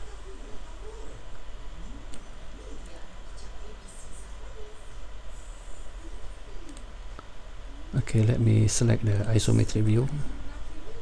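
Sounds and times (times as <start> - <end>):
mouse click: 6.6 - 7.3.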